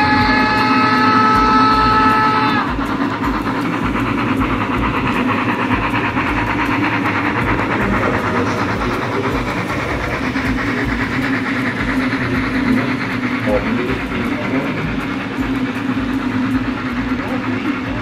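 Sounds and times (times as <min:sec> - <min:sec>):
model steam locomotive whistle: 0:00.0 - 0:18.0
model train rolling and clicking: 0:00.0 - 0:18.0.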